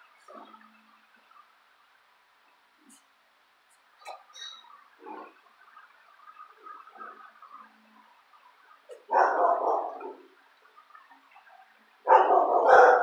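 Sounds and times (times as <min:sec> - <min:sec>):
dog barking gruffly: 0:08.9 - 0:10.4, 0:12.0 - 0:13.0.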